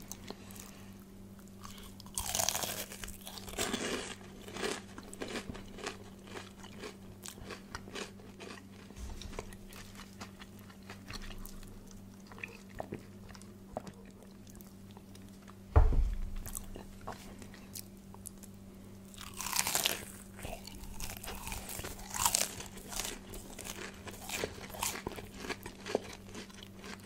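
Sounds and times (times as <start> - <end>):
crackling chewing: 1.4 - 15.6, 16.4 - 27.0
crunching fried chicken: 1.4 - 15.6, 16.4 - 27.0.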